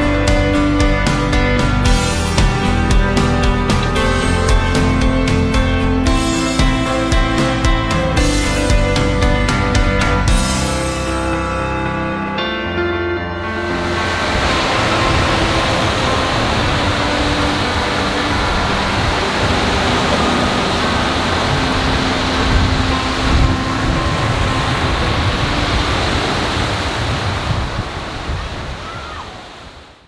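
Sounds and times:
wind: 0:12.4 - 0:30.0
waves breaking on beach: 0:13.6 - 0:30.0.

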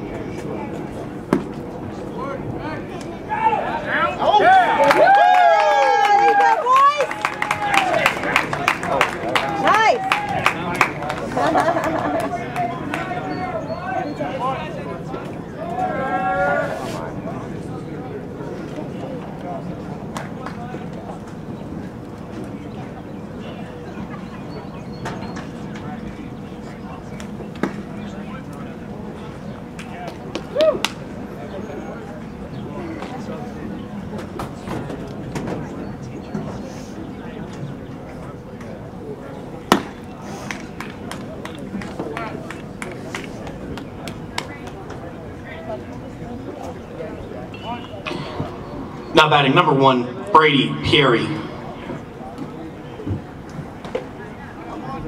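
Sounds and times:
background chatter: 0:00.0 - 0:55.0
background voices: 0:46.2 - 0:52.7.

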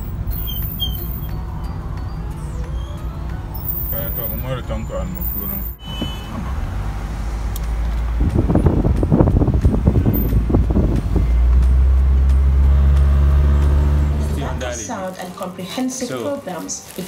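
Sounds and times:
car cabin rumble: 0:00.0 - 0:14.6.

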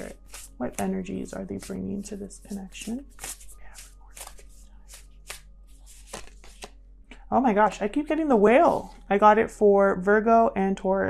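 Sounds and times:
cards being shuffled: 0:00.0 - 0:07.3.

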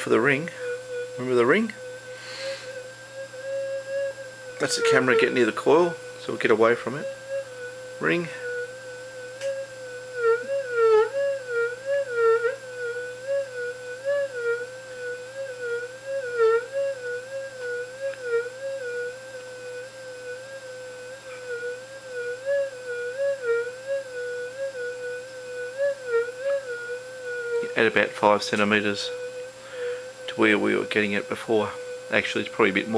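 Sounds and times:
metal detector wobbling tone: 0:04.6 - 0:07.0.

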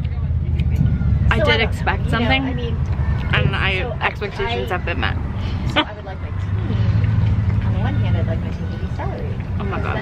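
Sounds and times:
people talking: 0:00.0 - 0:10.0
vehicle engine rumbling: 0:00.0 - 0:10.0.

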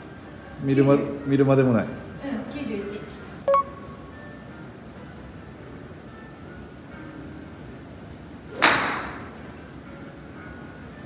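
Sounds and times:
faint steady background noise: 0:00.0 - 0:11.0
short electronic beep: 0:03.5 - 0:04.0.

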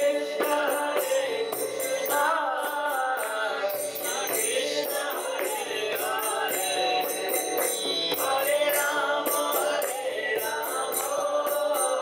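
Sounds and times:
jingling high percussion: 0:00.0 - 0:12.0
man singing a chant: 0:00.0 - 0:12.0.

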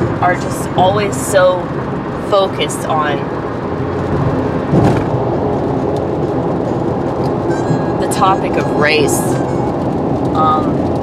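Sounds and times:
road and wind noise inside car: 0:00.0 - 0:11.0.

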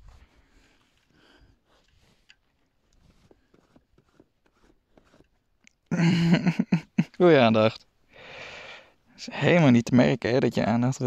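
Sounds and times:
sheep nuzzling clicks and rustles: 0:00.0 - 0:05.9.

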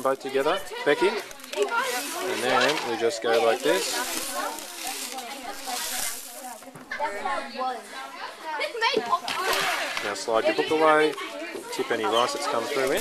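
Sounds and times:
grains rustling in plastic sieve: 0:00.0 - 0:07.5, 0:12.3 - 0:13.0
indistinct voices: 0:00.0 - 0:08.4.

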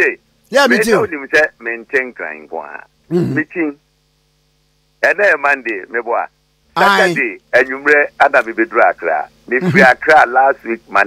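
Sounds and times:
faint electrical hum: 0:00.0 - 0:11.0
man's voice: 0:00.5 - 0:01.1, 0:06.8 - 0:07.3.

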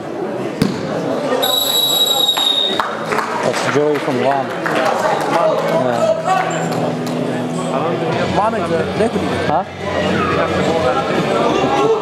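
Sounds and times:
spectators' voices: 0:00.0 - 0:12.0
high-pitched signal tone: 0:01.4 - 0:02.8.

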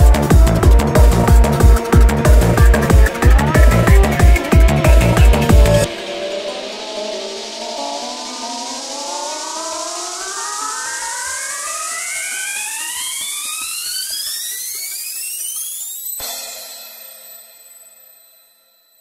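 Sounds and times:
rising synth sweep: 0:00.0 - 0:16.2
hiss: 0:03.2 - 0:15.9
high ringing tail: 0:16.0 - 0:19.0.

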